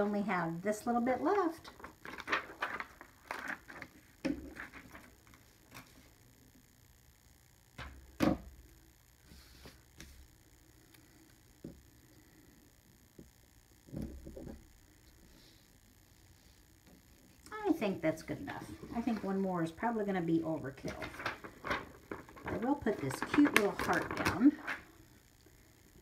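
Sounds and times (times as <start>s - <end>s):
paper rustling: 1.2s - 6.0s, 18.4s - 19.4s, 20.6s - 24.8s.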